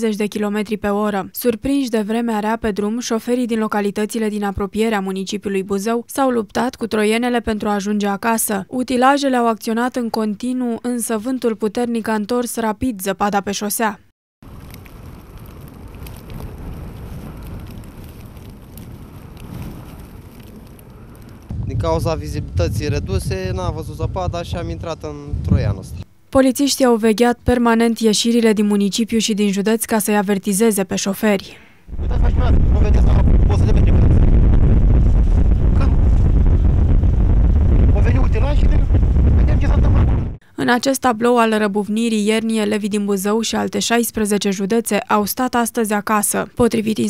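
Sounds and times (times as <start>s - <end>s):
blizzard wind blowing: 14.4s - 26.1s, 31.8s - 40.4s.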